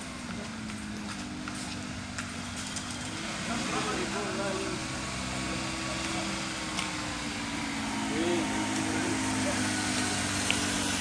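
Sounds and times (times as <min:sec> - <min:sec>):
vehicle engine humming: 0:00.0 - 0:11.0.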